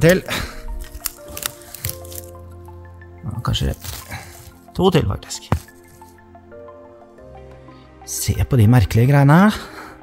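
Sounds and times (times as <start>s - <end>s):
mushroom stem snapping: 0.0s - 2.9s, 3.5s - 6.2s
soft background music: 0.0s - 10.0s.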